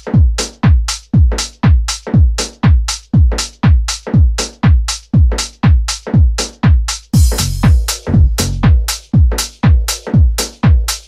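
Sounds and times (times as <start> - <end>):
kick drum beat: 0.0 - 11.0
crisp high percussion: 7.2 - 8.8
deep bass: 7.2 - 8.9.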